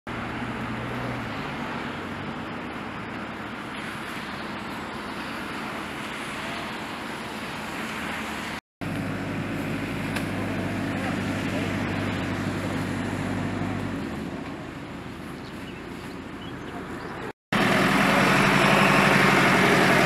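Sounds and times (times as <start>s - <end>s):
traffic hiss on wet road: 0.2s - 14.0s, 17.6s - 20.0s
tractor engine idling: 8.8s - 17.0s, 17.6s - 20.0s.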